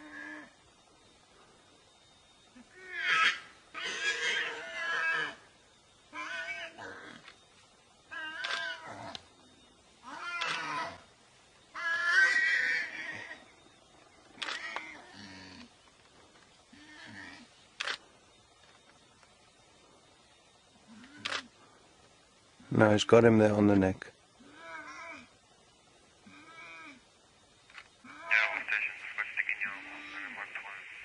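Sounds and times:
warthog squealing: 2.9s - 5.4s.

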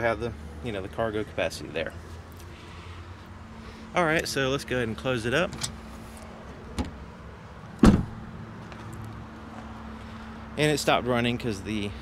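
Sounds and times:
car liftgate shutting thud: 7.8s - 8.2s.

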